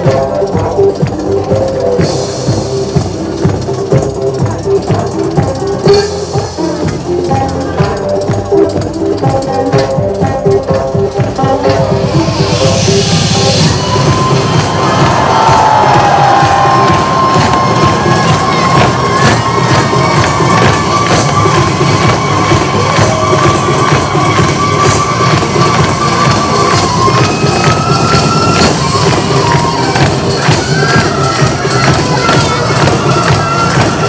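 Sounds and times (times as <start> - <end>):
audience cheering: 13.4 - 34.0.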